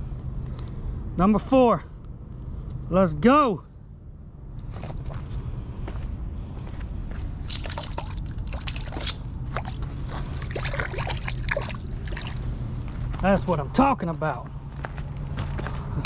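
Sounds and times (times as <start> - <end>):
steady low rumble: 0.0 - 16.0
steps on wet rocks and gravel: 7.1 - 13.6
shallow water sloshing and splashing: 7.4 - 12.8.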